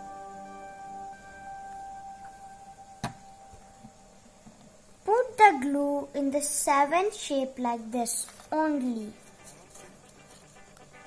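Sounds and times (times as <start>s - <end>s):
soft background music: 0.0s - 4.4s, 8.7s - 11.0s.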